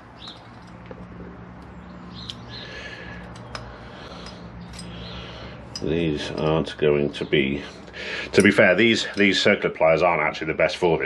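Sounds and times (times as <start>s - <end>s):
metal pliers clicking and scraping: 0.2s - 6.6s, 8.3s - 9.5s.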